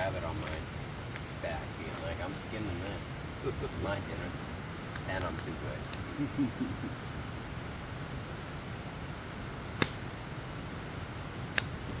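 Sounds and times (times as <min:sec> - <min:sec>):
fire hissing: 0:00.0 - 0:12.0
logs crackling in fire: 0:00.0 - 0:12.0
sharp pops of fire: 0:00.3 - 0:03.0, 0:04.8 - 0:06.1, 0:08.3 - 0:08.7, 0:09.7 - 0:10.2, 0:11.4 - 0:12.0.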